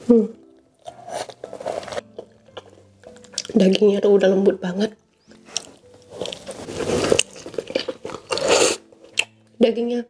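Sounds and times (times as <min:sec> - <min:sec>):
close-up chewing: 0:00.4 - 0:09.4.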